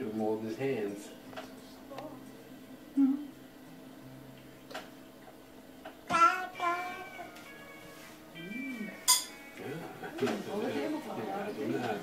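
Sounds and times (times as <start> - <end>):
cutlery clinking on dish: 9.0 - 9.4.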